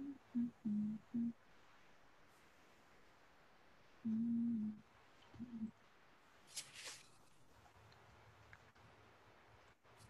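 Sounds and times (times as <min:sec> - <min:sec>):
person humming a tune: 0:00.0 - 0:01.3, 0:04.1 - 0:04.8, 0:05.4 - 0:05.7.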